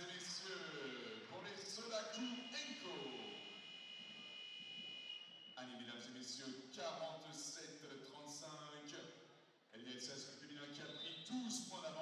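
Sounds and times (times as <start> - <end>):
sports hall ambience: 0.0 - 12.0
steady high-pitched tone: 0.3 - 5.9.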